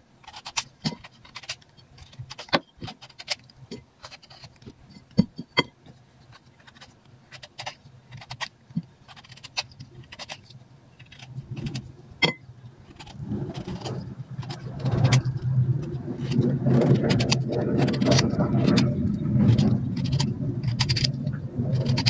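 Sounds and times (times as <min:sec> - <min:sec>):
low steady rumble: 0:00.0 - 0:22.0
knife scraping fruit peel: 0:00.2 - 0:11.9, 0:12.8 - 0:22.0.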